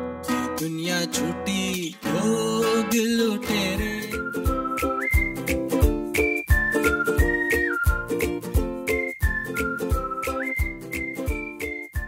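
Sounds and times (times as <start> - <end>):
whistled melody: 3.5 - 12.0.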